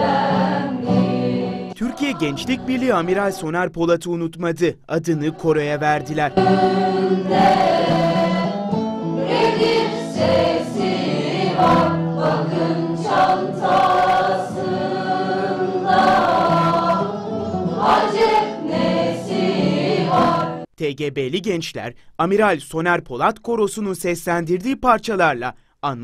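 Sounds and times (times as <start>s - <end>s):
mixed choir singing: 0.0s - 3.2s, 5.2s - 20.7s.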